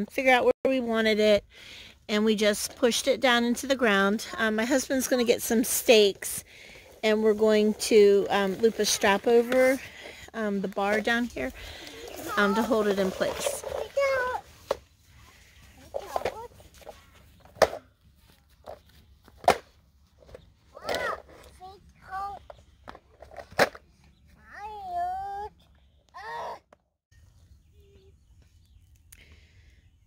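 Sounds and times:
toddler babbling and squealing: 24.4s - 25.5s, 26.2s - 26.6s.

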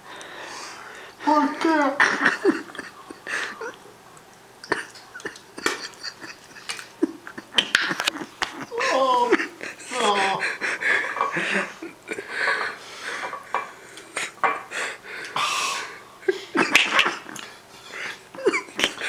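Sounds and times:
person laughing: 2.0s - 3.8s, 4.6s - 12.6s, 16.2s - 19.0s.

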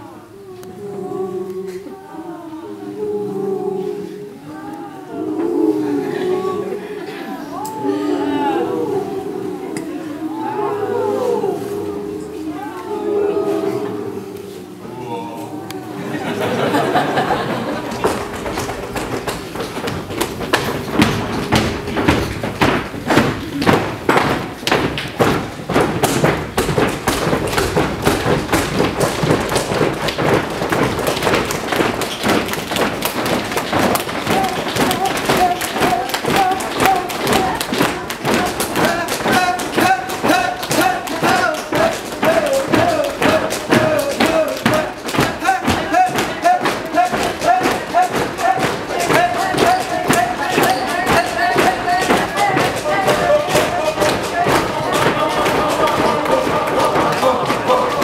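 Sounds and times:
people tapping and thumping hands: 15.7s - 58.0s.

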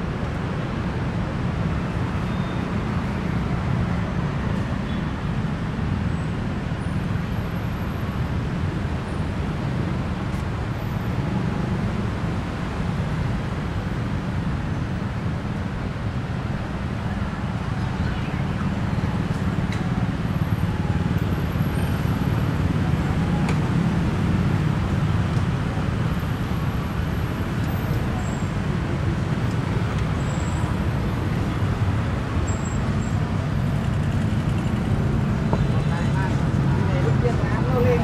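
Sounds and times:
motorbike and car engines: 8.1s - 38.0s.

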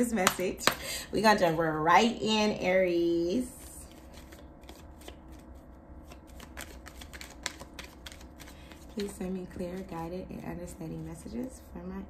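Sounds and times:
cards shuffled by hand: 3.8s - 10.0s.

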